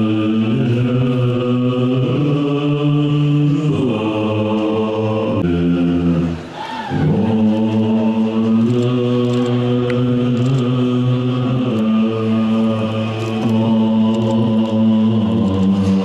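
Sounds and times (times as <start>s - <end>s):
monks chanting in low voices: 0.0s - 16.0s.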